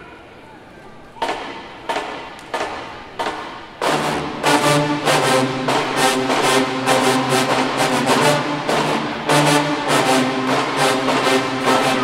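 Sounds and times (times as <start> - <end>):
low crowd chatter: 0.0 - 12.0
marching drum hits: 1.2 - 12.0.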